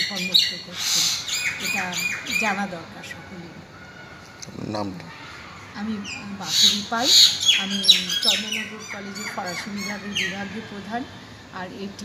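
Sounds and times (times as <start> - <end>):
birds squawking: 0.0 - 12.0.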